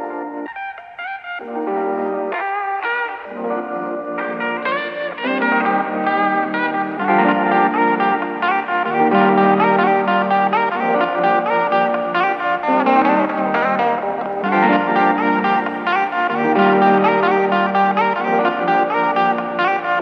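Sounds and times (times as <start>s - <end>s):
background guitar music: 0.0s - 20.0s.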